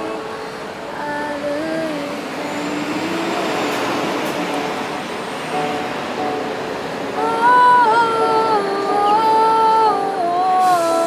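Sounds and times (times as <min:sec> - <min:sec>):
woman singing long notes: 0:00.0 - 0:05.1, 0:07.0 - 0:11.0
passing road traffic: 0:00.0 - 0:11.0.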